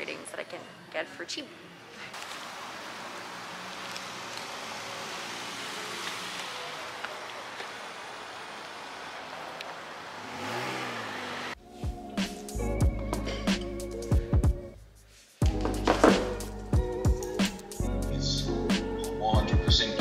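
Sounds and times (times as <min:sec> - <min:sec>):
road traffic rushing: 0:01.6 - 0:11.6
car engine rising and falling: 0:02.2 - 0:11.6.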